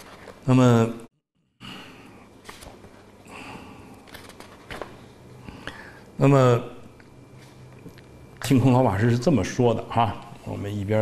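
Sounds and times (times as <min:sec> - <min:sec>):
man breathing: 0:01.6 - 0:02.3, 0:03.2 - 0:04.1, 0:05.4 - 0:06.2.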